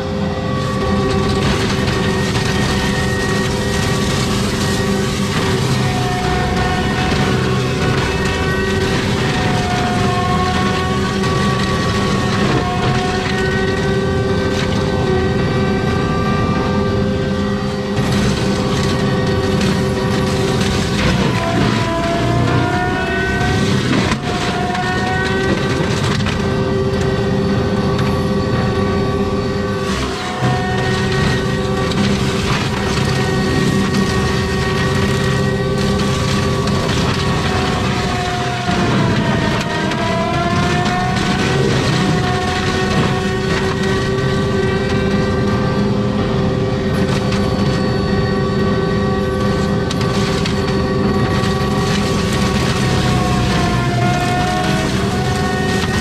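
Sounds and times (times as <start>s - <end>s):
forestry mulcher grinding brush: 0.0s - 56.0s
wood crackling being shredded: 0.0s - 56.0s.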